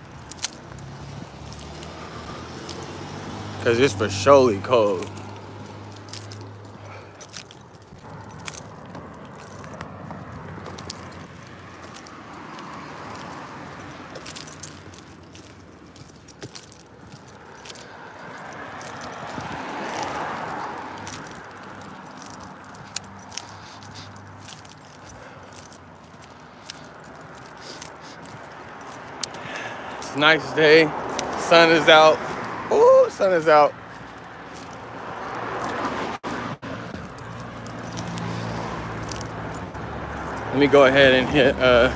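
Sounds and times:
clicks and jingles from handling: 0.0 - 36.1, 36.8 - 41.9
vehicle passing: 0.0 - 41.9.

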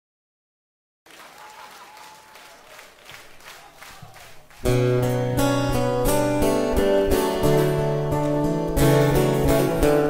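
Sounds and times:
audience applauding: 1.1 - 5.2.

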